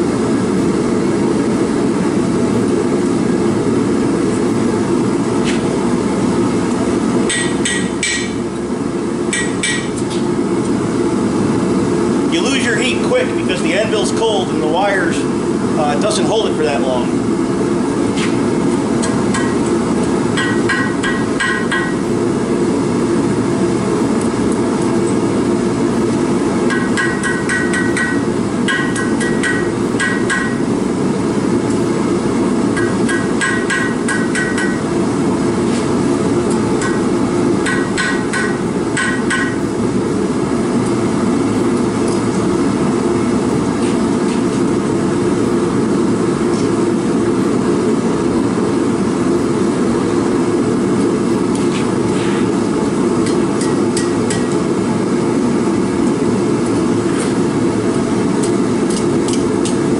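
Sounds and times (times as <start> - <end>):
forge burner roaring: 0.0 - 59.9
hammer ringing on anvil: 9.3 - 10.0, 20.4 - 22.0, 26.7 - 30.6, 32.8 - 34.8, 37.6 - 39.6.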